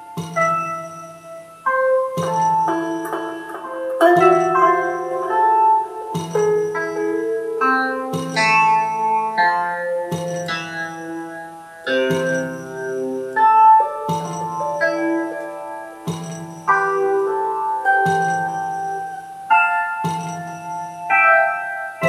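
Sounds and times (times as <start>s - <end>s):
sitar-like plucked synth chords: 0.0s - 22.0s.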